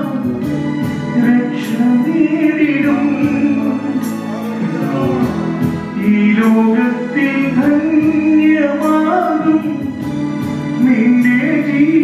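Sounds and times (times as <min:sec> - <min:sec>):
man singing into a microphone: 0:00.0 - 0:12.0.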